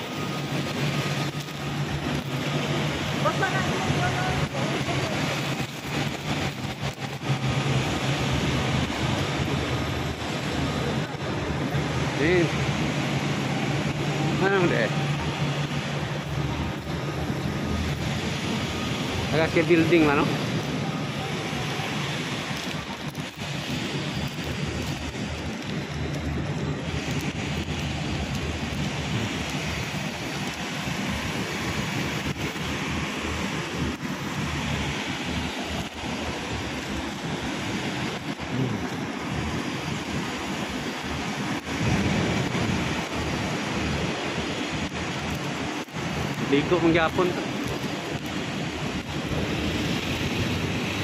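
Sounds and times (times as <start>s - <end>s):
city street traffic: 0.0s - 51.0s
wind buffeting microphone: 0.0s - 51.0s.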